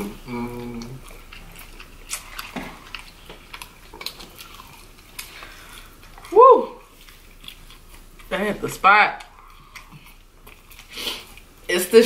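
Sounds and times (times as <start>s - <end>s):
chewing crunchy food: 0.0s - 11.7s.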